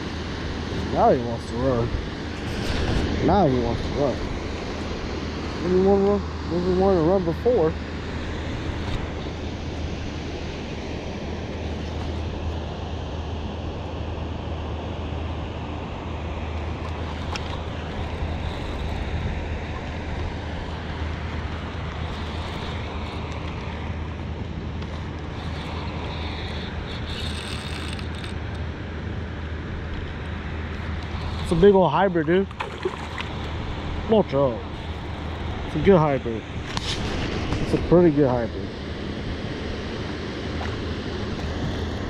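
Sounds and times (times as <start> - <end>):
water roaring through spillway: 30.6 - 42.0.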